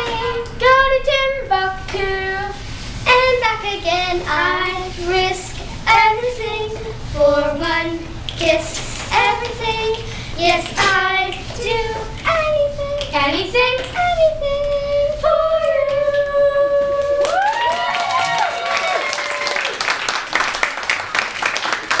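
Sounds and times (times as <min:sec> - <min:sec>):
children singing: 0:00.0 - 0:02.5
audience clapping: 0:17.0 - 0:22.0.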